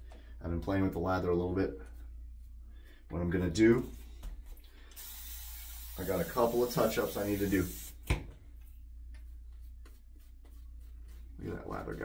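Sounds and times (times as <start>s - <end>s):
spray bottle hissing: 5.0s - 8.0s.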